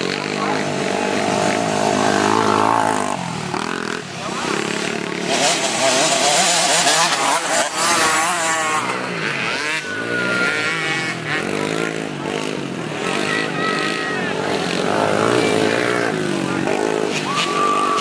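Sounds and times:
dirt bike engines revving: 0:00.0 - 0:18.0.

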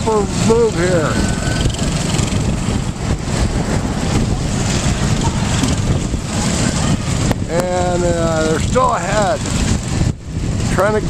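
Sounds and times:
go-kart engines running: 0:00.0 - 0:11.0
wind on microphone: 0:00.0 - 0:11.0.

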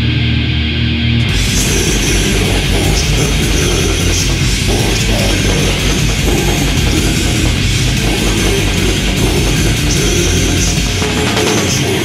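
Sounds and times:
metal song with distorted guitars: 0:00.0 - 0:12.0.

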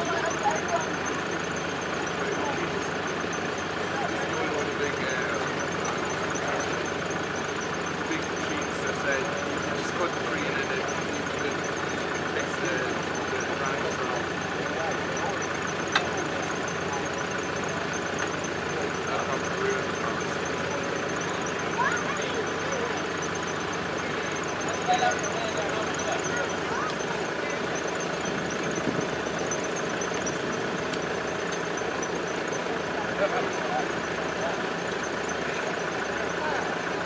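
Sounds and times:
excavator diesel engine running: 0:00.0 - 0:37.0
people talking: 0:00.0 - 0:37.0.

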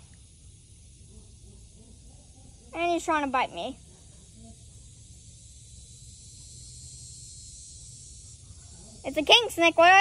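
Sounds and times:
high hiss: 0:04.4 - 0:10.0.

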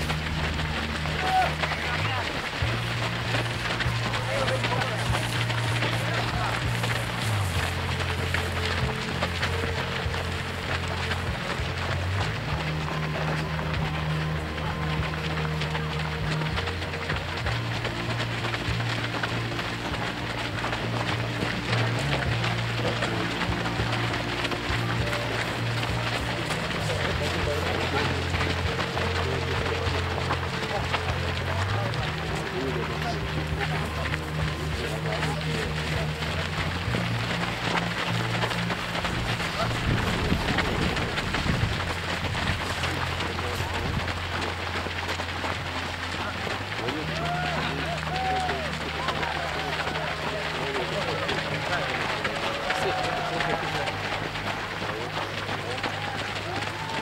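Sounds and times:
footsteps on gravel: 0:00.0 - 0:57.0
music of low held notes: 0:00.0 - 0:57.0
voices: 0:00.0 - 0:57.0.

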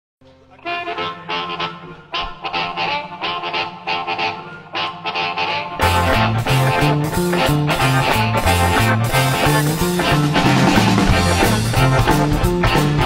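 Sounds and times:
amplified blues harmonica: 0:00.5 - 0:13.0
band with drums playing: 0:00.9 - 0:13.0.

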